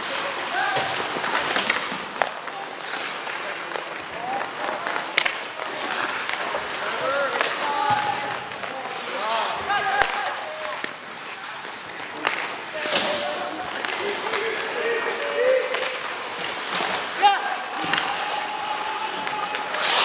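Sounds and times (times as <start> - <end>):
hockey sticks and puck clacking: 0.0 - 20.0
skates hissing on ice: 5.4 - 7.4, 19.3 - 20.0
people shouting: 17.1 - 20.0.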